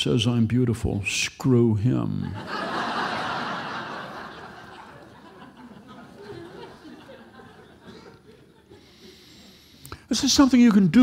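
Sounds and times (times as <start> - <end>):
audience laughing: 2.2 - 9.2.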